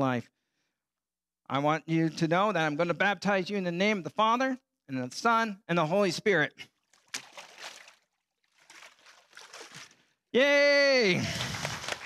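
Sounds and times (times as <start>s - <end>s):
water sloshing and splashing: 6.7s - 10.2s.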